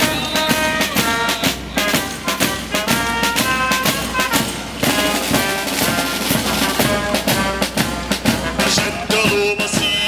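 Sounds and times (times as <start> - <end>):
brass melody: 0.0 - 10.0.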